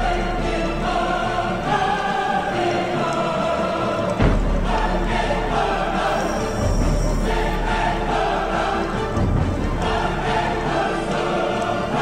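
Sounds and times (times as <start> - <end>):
choir-like background music: 0.0 - 12.0.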